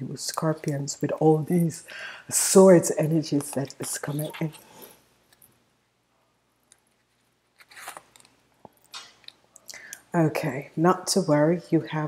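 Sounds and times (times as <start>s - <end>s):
cards rustling: 6.9s - 9.2s.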